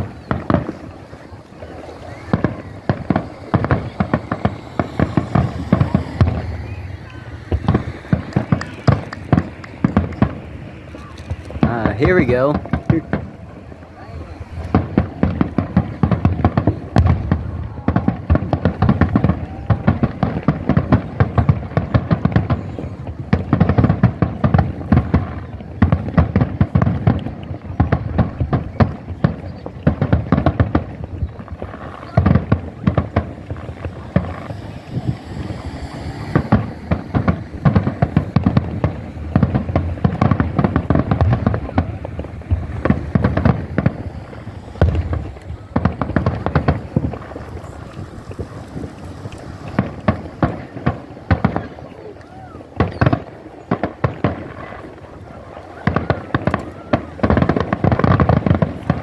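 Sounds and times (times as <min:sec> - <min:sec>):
firework booms and crackles: 0:00.0 - 0:59.0.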